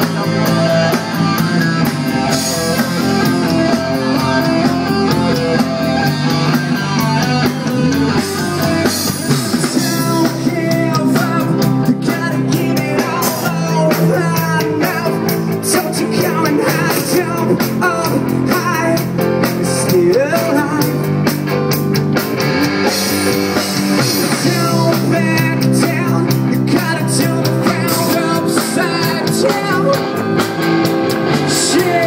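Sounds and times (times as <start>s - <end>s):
amplified electric guitars: 0.0s - 32.0s
drum kit beat: 0.0s - 32.0s
man singing into microphone: 8.6s - 21.1s, 24.2s - 30.3s, 31.3s - 32.0s.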